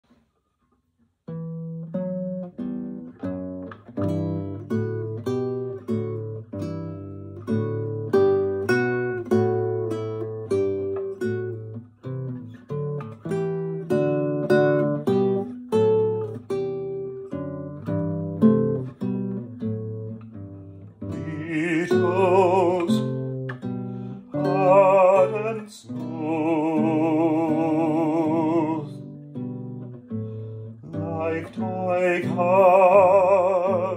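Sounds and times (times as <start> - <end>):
fingerpicked acoustic guitar: 0.1 - 33.9
person singing: 21.1 - 29.2, 30.8 - 33.9.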